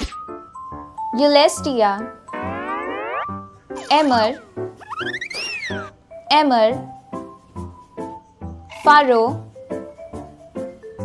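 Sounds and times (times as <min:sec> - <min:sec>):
children's background music: 0:00.0 - 0:11.0
cartoon rising boing: 0:02.3 - 0:05.9.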